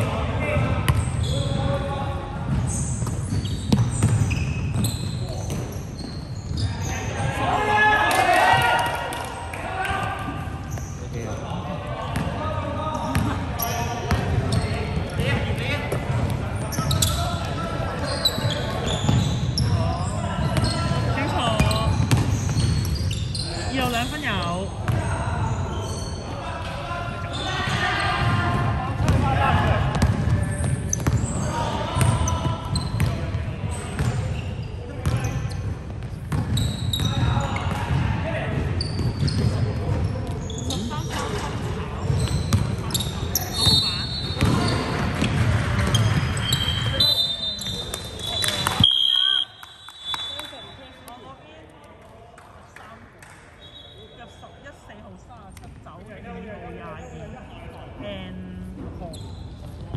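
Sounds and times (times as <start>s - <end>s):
basketball bouncing on hardwood: 22.0s - 22.8s.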